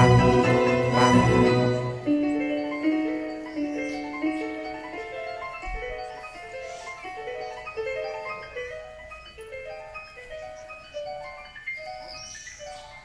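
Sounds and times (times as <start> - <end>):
symphony orchestra playing: 0.0 - 8.0.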